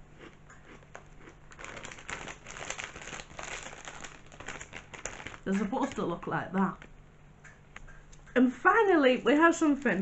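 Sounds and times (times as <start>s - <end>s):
crunchy snack being chewed: 0.0s - 6.0s
crisp packet crinkling: 0.6s - 7.0s.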